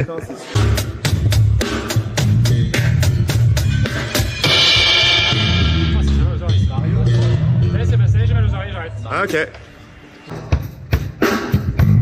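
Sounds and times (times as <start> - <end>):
drum kit strikes: 0.5 - 7.5, 10.3 - 12.0
steady low bass: 0.6 - 9.1.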